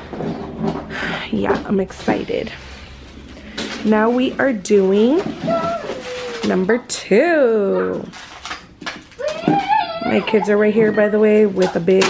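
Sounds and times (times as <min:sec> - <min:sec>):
young child vocalizing: 0:09.2 - 0:11.2.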